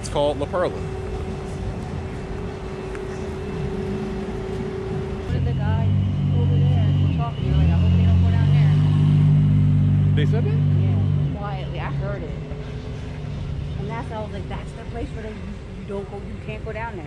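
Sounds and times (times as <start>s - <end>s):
people's voices: 0.0s - 9.3s, 10.1s - 17.0s
vehicle engine: 0.0s - 17.0s.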